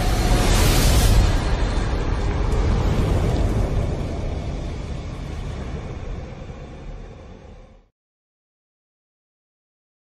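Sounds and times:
deep rumbling sound effect: 0.0s - 7.9s.

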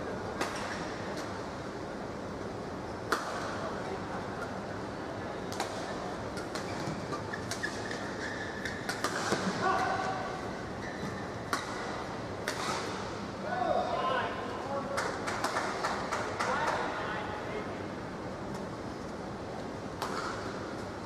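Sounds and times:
racket hitting shuttlecock: 8.6s - 9.9s, 11.5s - 13.0s, 20.0s - 20.6s.

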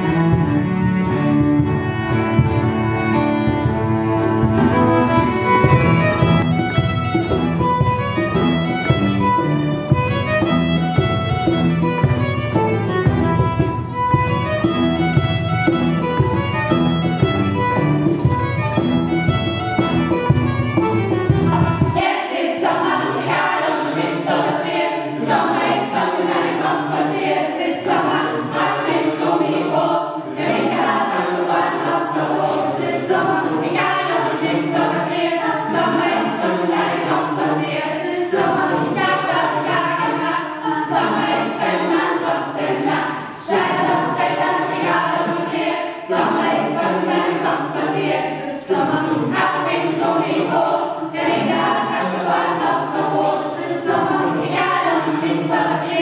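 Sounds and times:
mixed choir singing: 0.0s - 1.2s, 21.4s - 56.0s.

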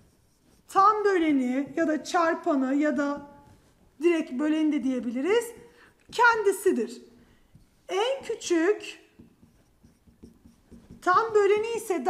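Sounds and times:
pen tapping and scratching on glass: 0.0s - 12.0s.

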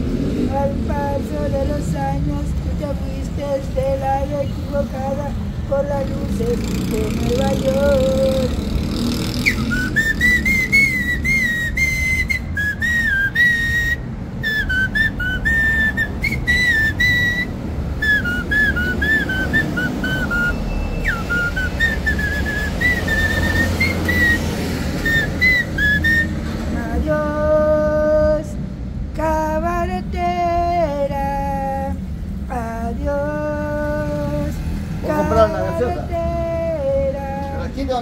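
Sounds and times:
man whistling a melody: 9.3s - 27.2s, 35.1s - 36.0s.

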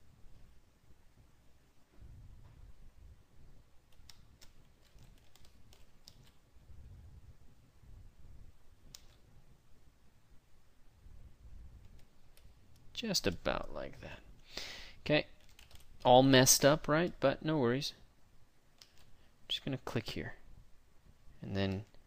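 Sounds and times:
low room hum: 0.0s - 22.0s
computer keyboard and mouse clicking: 3.9s - 6.4s, 8.9s - 9.2s, 15.4s - 16.1s, 18.8s - 19.2s.

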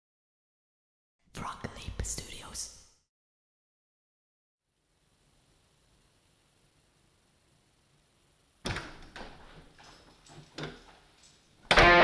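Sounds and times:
whispered voice: 1.3s - 2.9s.

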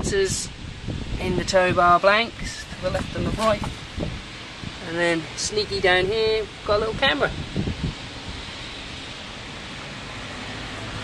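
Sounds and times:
wind hiss on microphone: 0.0s - 11.0s.

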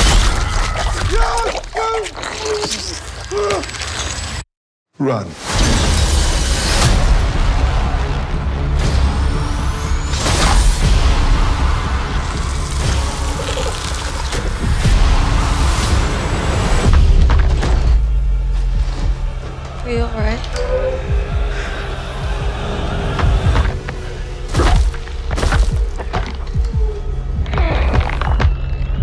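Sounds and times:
dark horror score: 5.4s - 29.0s.

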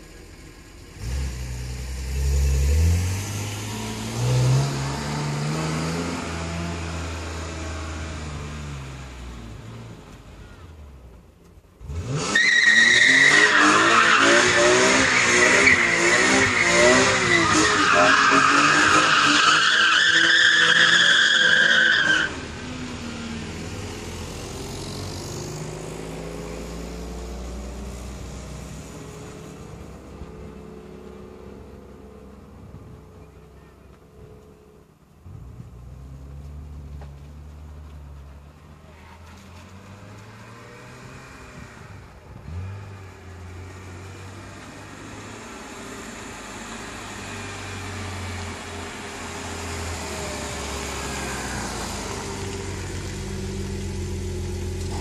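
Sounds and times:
car engine accelerating: 0.0s - 10.6s, 11.8s - 55.0s.

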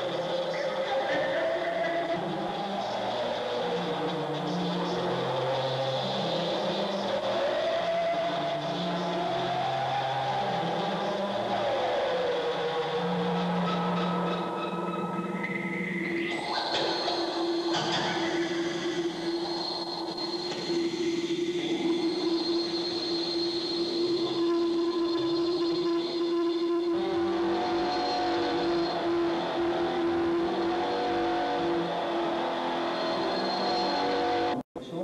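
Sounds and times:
experimental electronic drone music: 0.0s - 35.0s.

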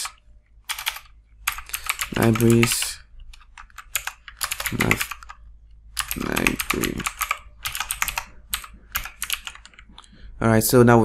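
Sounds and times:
keyboard typing: 0.0s - 10.1s.

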